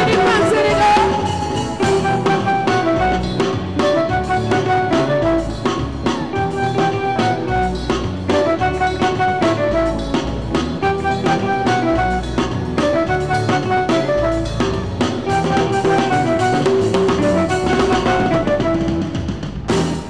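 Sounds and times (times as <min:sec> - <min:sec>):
drum kit beat: 0:00.0 - 0:20.0
keyboard and guitar riff: 0:00.0 - 0:20.0.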